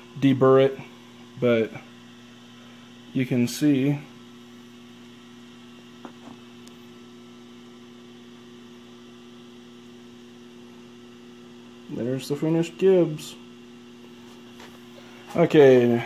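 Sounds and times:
electrical mains hum: 0.0s - 16.0s.

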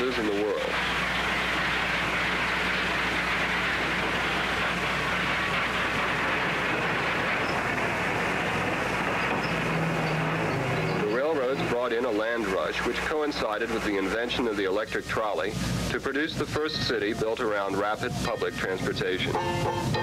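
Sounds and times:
low hum: 0.0s - 14.5s
steam train rushing noise: 0.0s - 20.0s.

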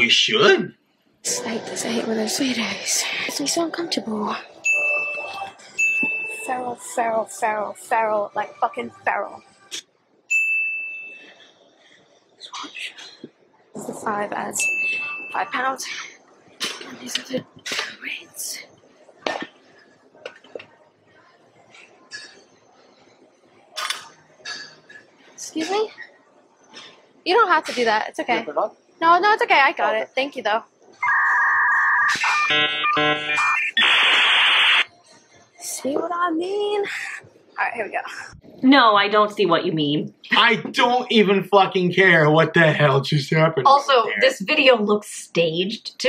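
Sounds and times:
steady high beep: 4.3s - 6.8s, 10.3s - 11.4s, 14.6s - 15.7s
bell-like ding: 4.6s - 6.5s, 14.6s - 15.4s
static-like hiss: 15.4s - 45.5s.

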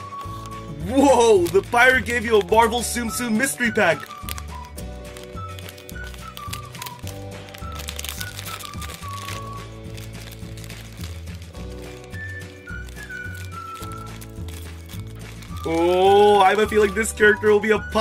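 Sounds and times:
scissors cutting plastic bag: 0.0s - 17.2s
foil bag crinkling: 0.0s - 18.0s
light background music: 0.0s - 18.0s.

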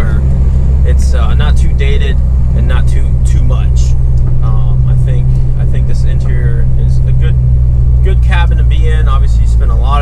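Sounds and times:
car engine droning inside cabin: 0.0s - 10.0s.

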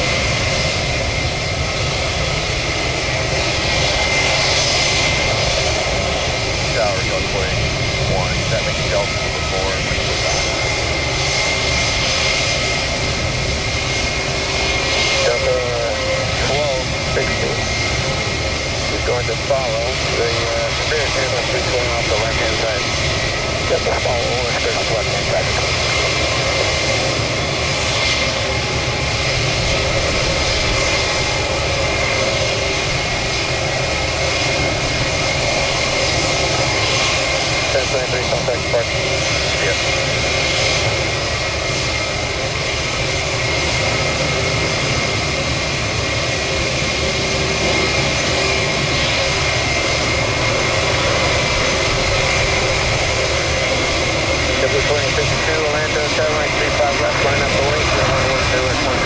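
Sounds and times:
jet airliner engines: 0.0s - 59.0s.

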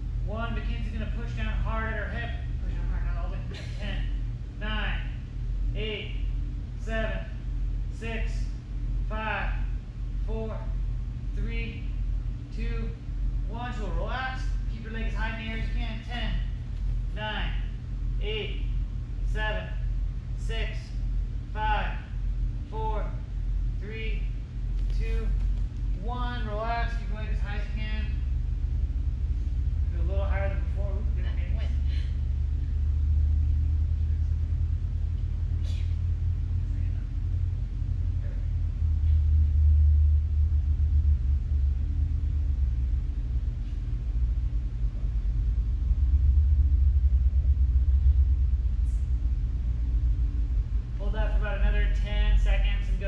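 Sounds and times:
steady low rumble: 0.0s - 53.0s.

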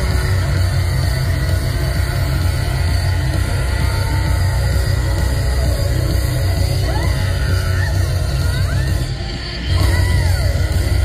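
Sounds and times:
live heavy rock music: 0.0s - 11.0s.

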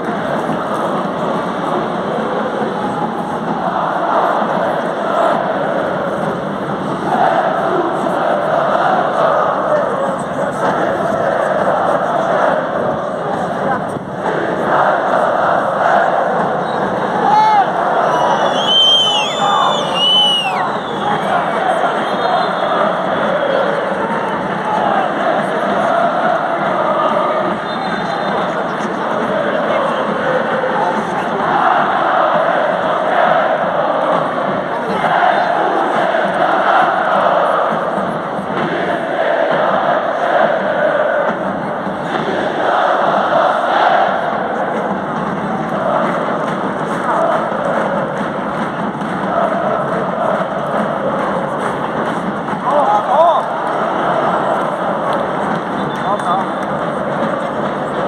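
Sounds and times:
stadium crowd chanting and singing: 0.0s - 58.0s.

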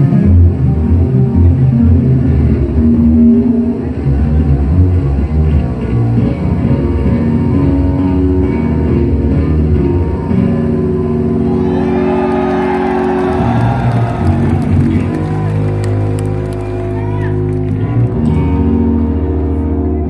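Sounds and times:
electric bass sustained notes: 0.0s - 20.0s
crowd cheering and whistling: 11.4s - 17.4s.

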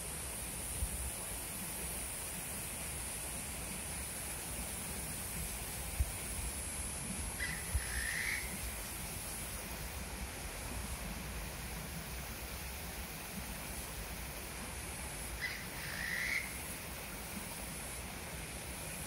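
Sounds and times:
outdoor background hiss: 0.0s - 19.0s
bird calling: 7.4s - 8.6s, 15.4s - 16.6s.

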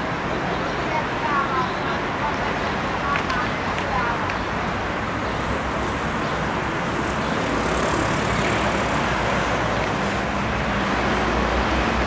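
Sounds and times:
passing cars traffic noise: 0.0s - 12.0s.

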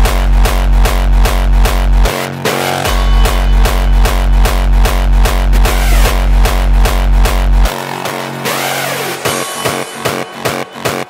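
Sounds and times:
distorted kick drums with bass: 0.0s - 7.9s
synth layers: 0.0s - 11.0s
sweeping synth effect: 2.1s - 11.0s.

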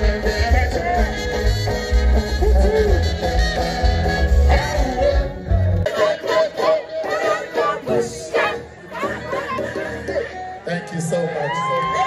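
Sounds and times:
sung vocals over thin backing: 0.0s - 10.6s.

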